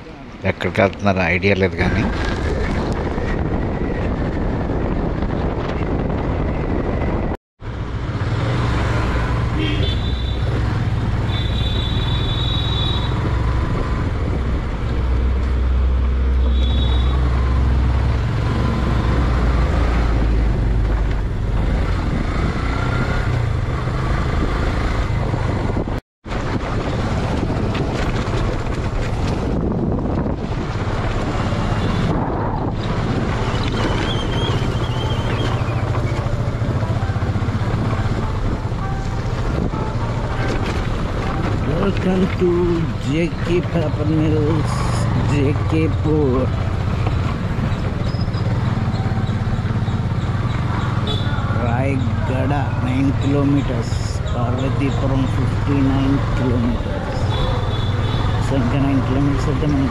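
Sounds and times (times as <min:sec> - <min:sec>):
vehicle engine and road noise: 0:00.0 - 0:59.9.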